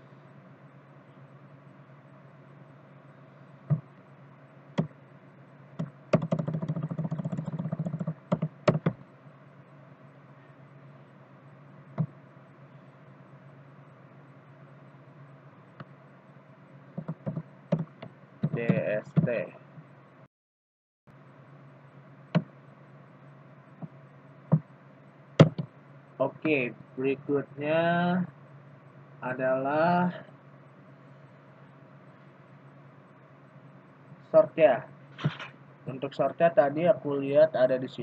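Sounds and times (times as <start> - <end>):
keyboard keys clicking: 5.8 - 9.0.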